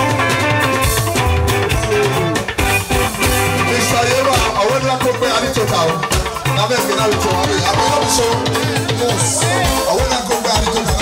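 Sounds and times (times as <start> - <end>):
live band playing: 0.0 - 11.0
man singing into microphone: 3.6 - 11.0.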